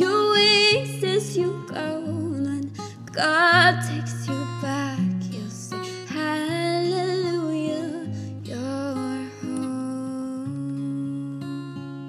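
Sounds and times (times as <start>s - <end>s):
acoustic guitar picking chords: 0.0s - 12.0s.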